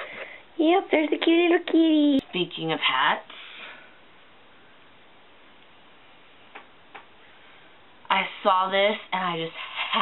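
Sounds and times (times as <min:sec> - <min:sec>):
steady faint hiss: 0:00.0 - 0:10.0.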